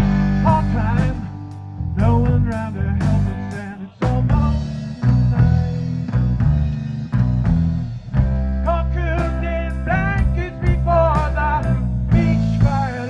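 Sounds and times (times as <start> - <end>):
live rock band playing: 0.0 - 13.0
drum hits: 2.0 - 13.0.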